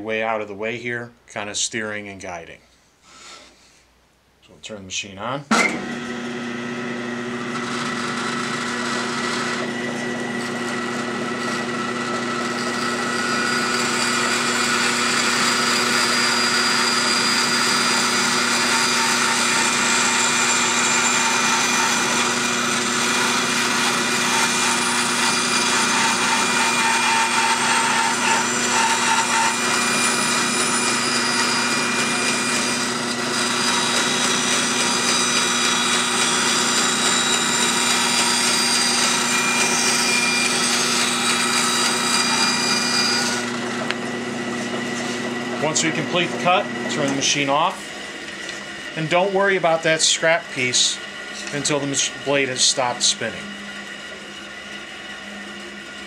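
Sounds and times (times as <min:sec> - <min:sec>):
bandsaw cutting wood: 0:05.5 - 0:56.0.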